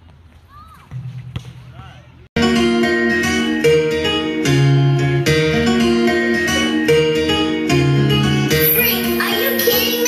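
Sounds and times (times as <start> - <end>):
basketball bouncing: 0.0 - 1.7
music with plucked guitar: 2.4 - 10.0.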